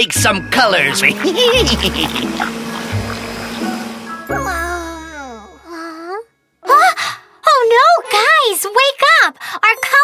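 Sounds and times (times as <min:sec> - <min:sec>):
cartoon music: 0:00.2 - 0:06.2
deep hum: 0:00.5 - 0:05.7.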